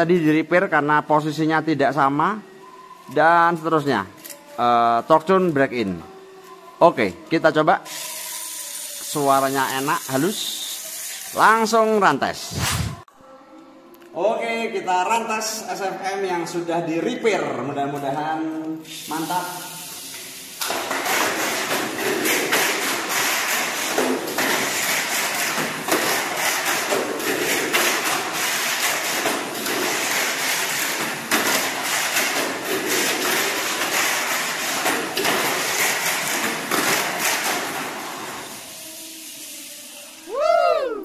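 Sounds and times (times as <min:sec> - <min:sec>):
toy car motor whirring: 0:07.9 - 0:11.4
toy car clattering on track walls: 0:20.6 - 0:38.6.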